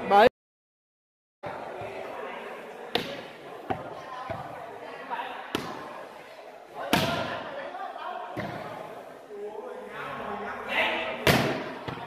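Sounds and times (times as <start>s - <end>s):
spectators chattering: 1.4s - 12.0s
volleyball slaps: 2.9s - 4.4s, 5.5s - 5.9s, 6.9s - 7.4s, 11.2s - 12.0s.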